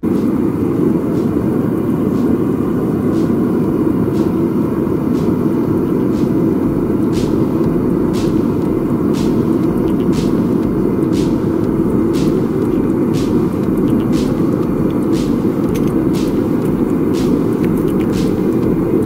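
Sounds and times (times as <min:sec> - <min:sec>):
propane burner roaring: 0:00.0 - 0:19.0.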